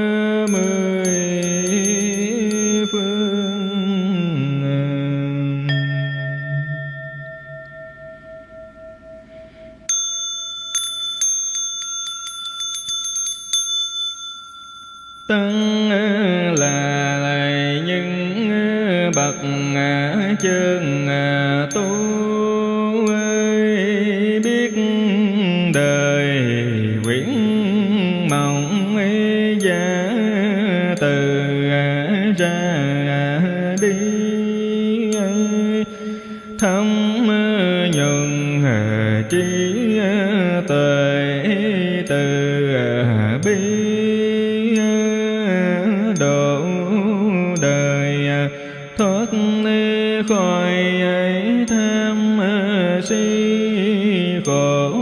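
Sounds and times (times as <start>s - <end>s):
bell ringing: 0.0s - 4.8s, 5.7s - 17.9s, 33.8s - 50.9s
man chanting: 0.0s - 6.8s, 15.3s - 55.0s.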